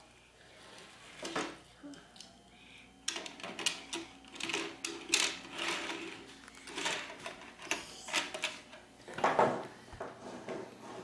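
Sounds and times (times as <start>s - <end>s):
toy cars rattling on plastic track: 3.2s - 8.6s.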